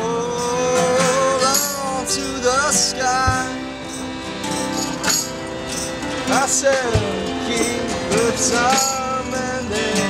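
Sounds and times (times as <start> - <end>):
accordion chords: 0.0 - 10.0
strummed acoustic guitar: 0.0 - 10.0
jingling percussion hits: 0.2 - 10.0.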